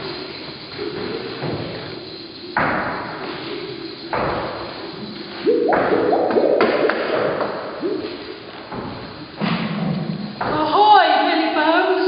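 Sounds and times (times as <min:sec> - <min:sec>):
wavering pitched tones: 0:04.8 - 0:08.6
low rough rumbling: 0:05.5 - 0:08.5.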